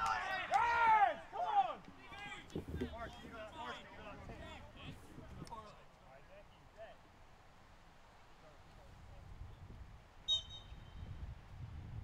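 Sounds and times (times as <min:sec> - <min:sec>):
referee's whistle blast: 0:10.3 - 0:11.0.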